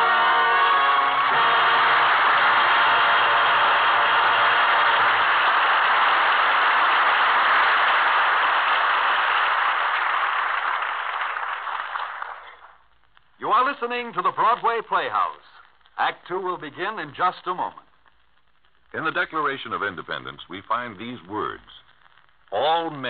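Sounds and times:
audience applauding: 0:00.0 - 0:12.9.

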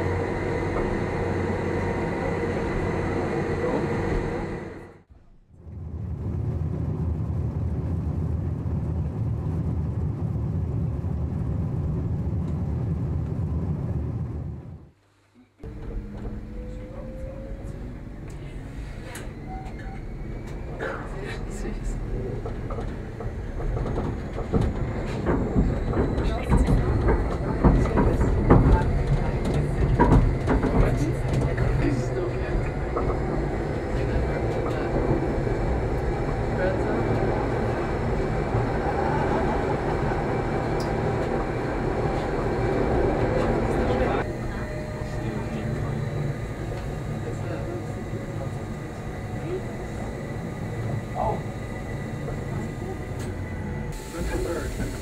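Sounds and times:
railcar wheels rumbling: 0:00.0 - 0:15.0, 0:15.6 - 0:55.0
clatter over track: 0:15.6 - 0:55.0.

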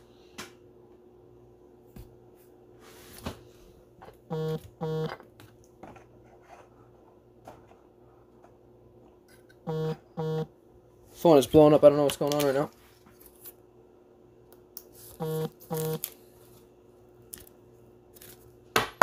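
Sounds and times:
electronic notification tones: 0:04.3 - 0:05.1, 0:09.7 - 0:10.5, 0:15.2 - 0:16.0.

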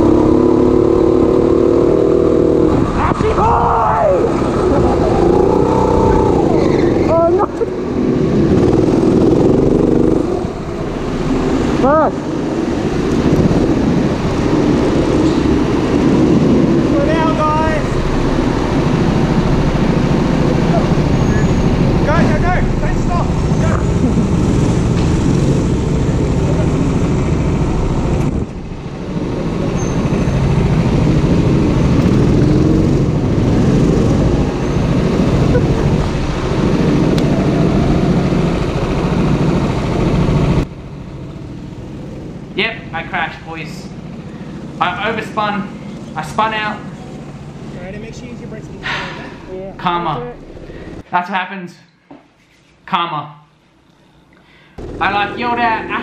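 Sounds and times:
go-kart engine running hard: 0:00.0 - 0:42.5, 0:54.8 - 0:56.0.

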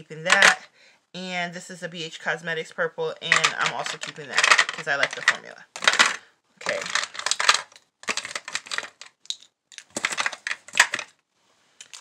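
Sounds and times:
plastic tubes clicking together: 0:00.3 - 0:00.6, 0:03.2 - 0:11.2, 0:11.8 - 0:12.0.

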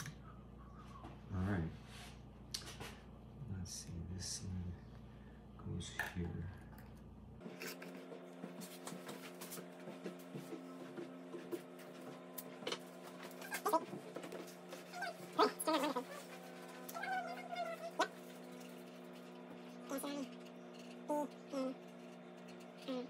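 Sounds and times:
dog whining: 0:13.4 - 0:14.0, 0:14.7 - 0:18.3, 0:19.8 - 0:20.4, 0:21.1 - 0:21.8, 0:22.8 - 0:23.0.

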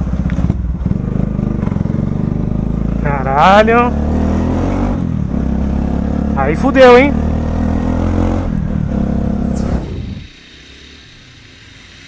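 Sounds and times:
motorcycle engine running: 0:00.0 - 0:03.9.

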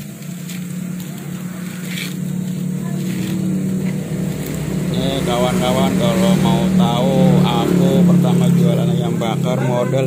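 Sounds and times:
steady low hum: 0:00.0 - 0:10.0
person talking: 0:04.9 - 0:10.0.

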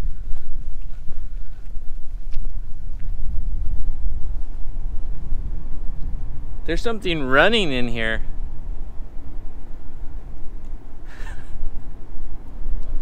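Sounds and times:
wind gusting on microphone: 0:00.0 - 0:13.0.

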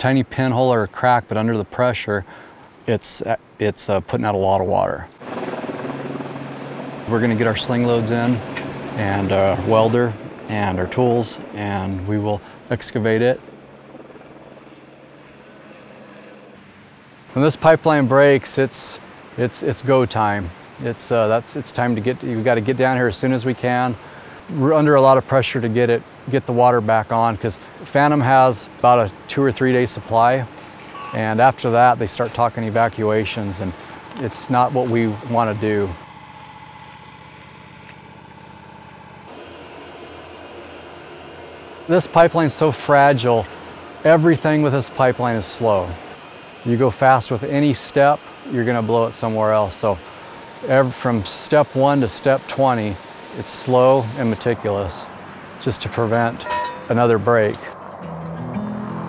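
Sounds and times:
helicopter hovering: 0:04.8 - 0:59.0
engine idling: 0:05.2 - 0:17.4, 0:27.6 - 0:57.8.

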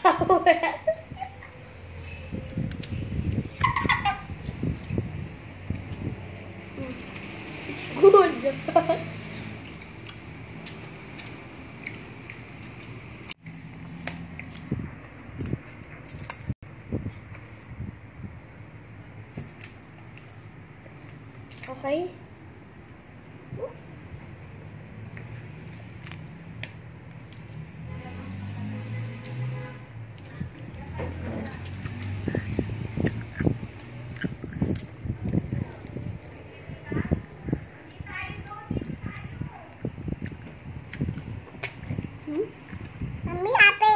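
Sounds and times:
child's wordless vocal sounds: 0:43.2 - 0:43.9.

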